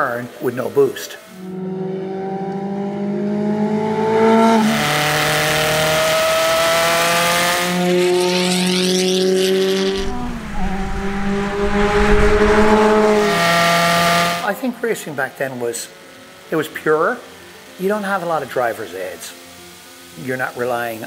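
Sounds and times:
race car engine at full throttle: 1.4s - 14.5s
rush of noise: 9.4s - 14.5s.

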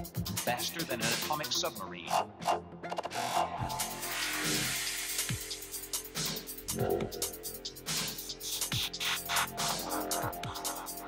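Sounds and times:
electronic music with synth tones: 0.0s - 11.0s.

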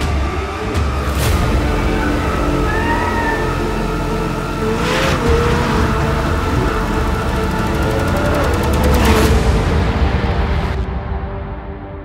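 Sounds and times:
car engine revving hard: 4.0s - 10.1s.

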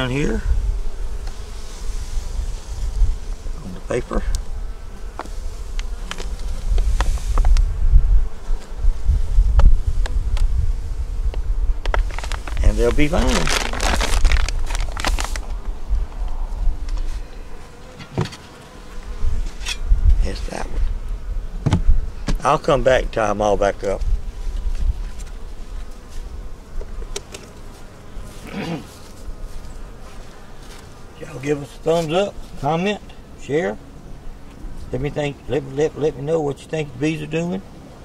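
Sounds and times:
wind rumble on microphone: 0.0s - 17.4s, 19.0s - 27.1s
honey bees buzzing: 0.0s - 38.0s.

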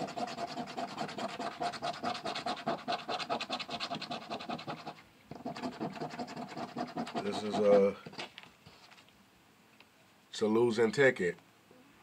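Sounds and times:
coin scraping scratch ticket: 0.0s - 8.2s.

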